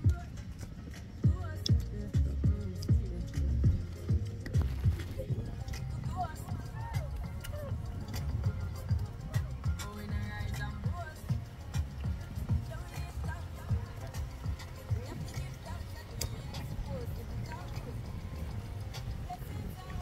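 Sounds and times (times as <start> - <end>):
faint voices: 0.0 - 20.0
music: 0.0 - 20.0
wind buffeting microphone: 0.0 - 20.0.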